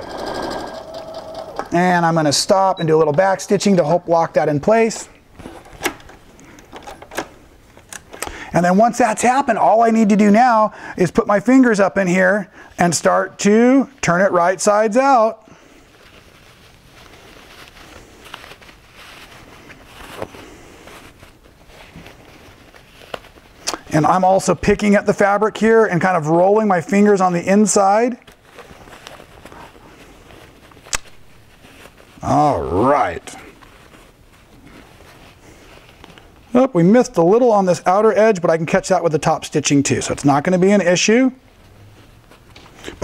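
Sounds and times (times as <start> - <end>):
fabric rustling: 15.6 - 25.6, 26.3 - 37.2, 39.9 - 43.0.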